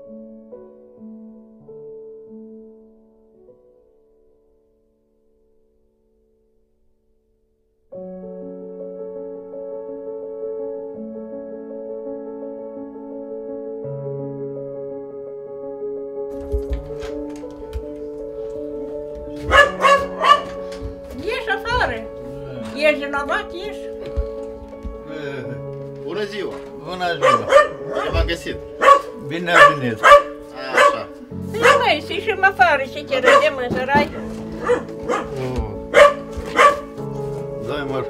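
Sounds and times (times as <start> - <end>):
soft background music: 0.0 - 6.8, 7.9 - 38.0
dog barking: 19.4 - 20.9, 27.2 - 32.1, 33.1 - 37.0.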